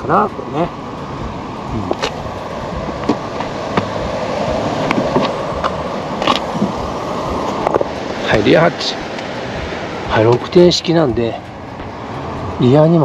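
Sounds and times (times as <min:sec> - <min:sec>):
rushing background noise: 0:00.0 - 0:13.0
tailgate clicks and knocks: 0:02.8 - 0:04.0.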